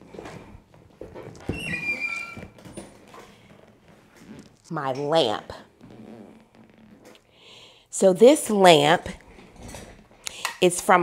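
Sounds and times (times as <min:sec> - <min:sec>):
high-pitched chair squeak: 0:01.4 - 0:04.6, 0:05.8 - 0:07.3.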